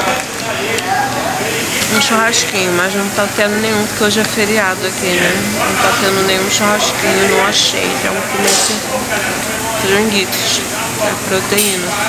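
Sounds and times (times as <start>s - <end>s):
faint voices: 0.0s - 12.0s
snack bar hissing background noise: 0.0s - 12.0s.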